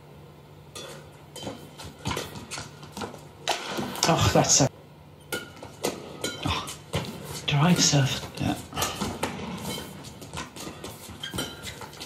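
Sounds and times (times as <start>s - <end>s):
racket hitting shuttlecock: 0.8s - 4.4s, 5.3s - 12.0s.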